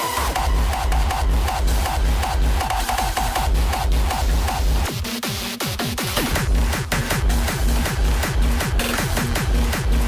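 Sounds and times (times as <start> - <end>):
hardstyle electronic dance music: 0.0 - 10.0.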